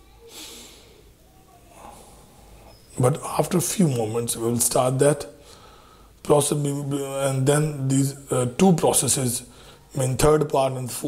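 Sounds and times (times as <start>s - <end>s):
faint room noise: 0.0s - 11.0s
breath into microphone: 0.2s - 1.1s, 5.4s - 6.2s, 9.5s - 9.9s.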